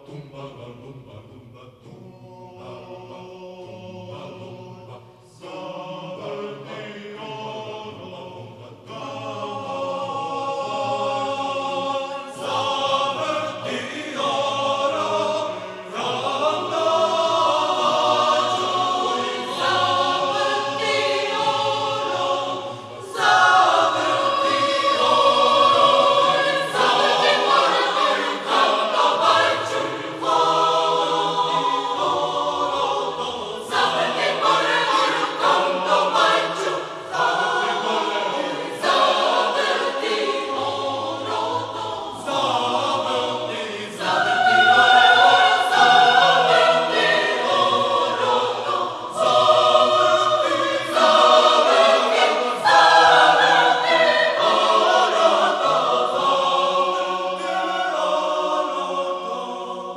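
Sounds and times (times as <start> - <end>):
choir singing: 0.0 - 59.9.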